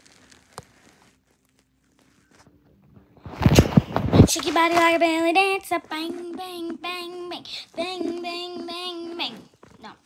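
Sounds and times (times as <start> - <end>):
phone microphone bumped and brushed: 2.3 - 5.2.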